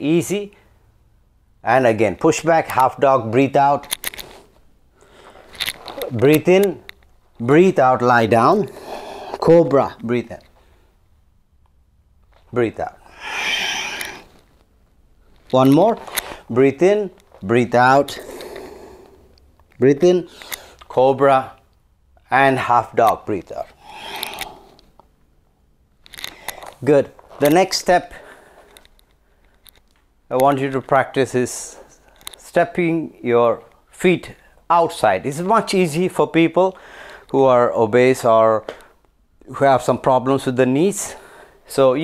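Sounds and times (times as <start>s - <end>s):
person exhaling: 8.6s - 9.4s, 13.0s - 14.4s, 18.1s - 19.3s, 23.7s - 24.8s.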